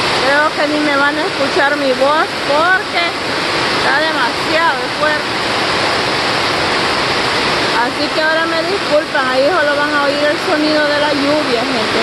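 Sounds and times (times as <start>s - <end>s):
heavy rain on vegetation: 0.0s - 12.0s.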